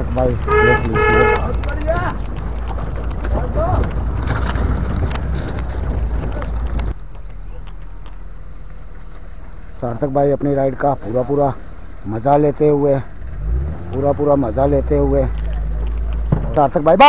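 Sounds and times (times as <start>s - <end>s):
low steady rumble: 0.0s - 16.9s
vehicle horn honks: 0.4s - 1.6s.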